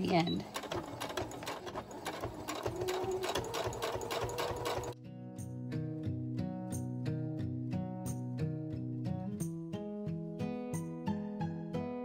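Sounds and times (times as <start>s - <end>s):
sewing machine stitching: 0.0s - 5.0s
background music of plucked notes: 5.0s - 12.0s.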